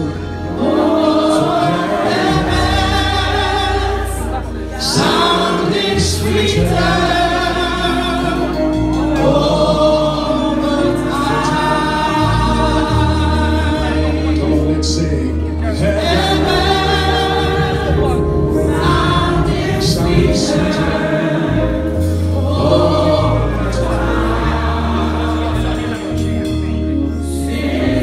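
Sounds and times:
deep sustained bass notes: 0:00.0 - 0:28.0
gospel choir singing: 0:00.0 - 0:28.0.

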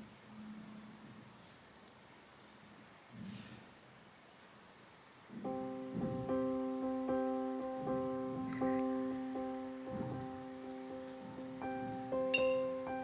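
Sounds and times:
soft piano music: 0:05.3 - 0:13.0.

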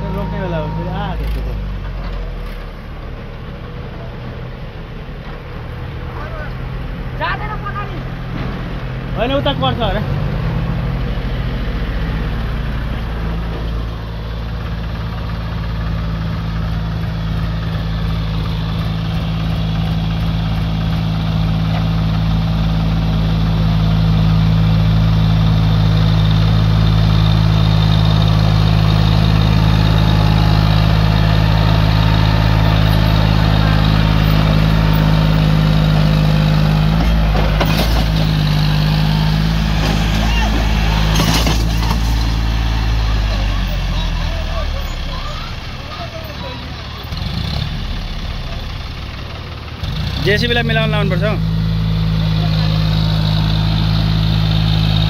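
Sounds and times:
tractor diesel engine running: 0:00.0 - 0:55.0.

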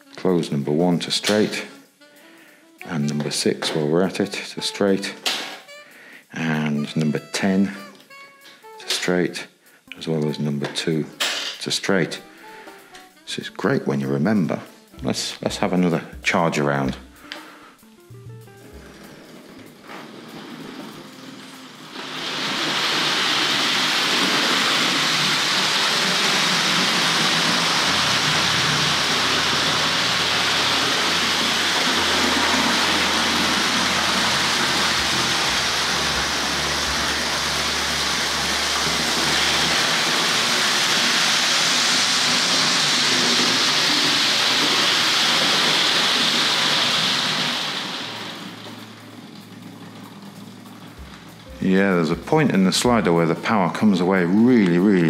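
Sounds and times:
model train running on rails: 0:19.0 - 0:53.3.

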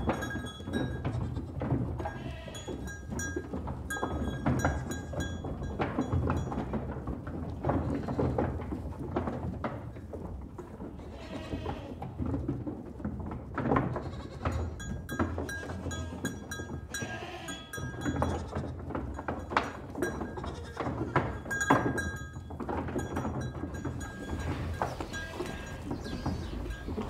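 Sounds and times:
livestock bleating: 0:01.2 - 0:02.7, 0:11.0 - 0:12.0, 0:14.0 - 0:14.7, 0:16.9 - 0:17.8, 0:24.3 - 0:26.6.

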